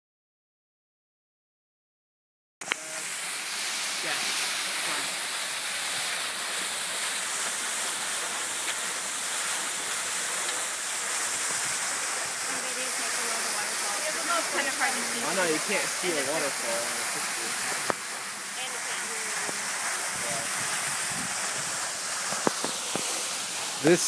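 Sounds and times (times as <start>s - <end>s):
fast-flowing water rushing: 2.6s - 24.0s.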